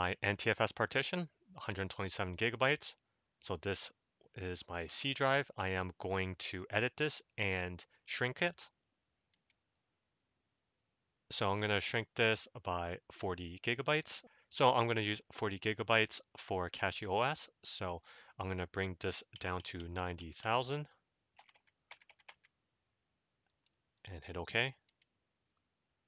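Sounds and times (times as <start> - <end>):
faint keyboard typing: 9.3 - 9.8, 19.1 - 20.0, 21.4 - 22.6, 24.8 - 25.2
faint mouse clicks: 9.3 - 9.8, 24.8 - 25.1.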